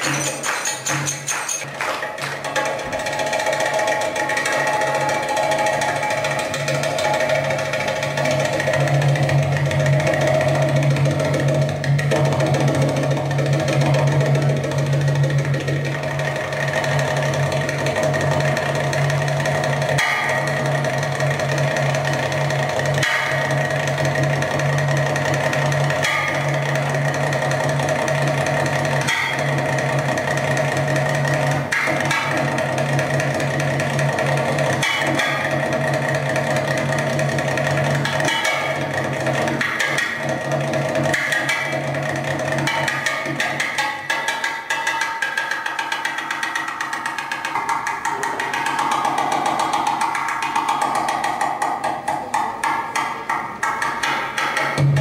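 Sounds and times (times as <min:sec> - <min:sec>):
goblet drum solo: 0:00.0 - 0:55.0.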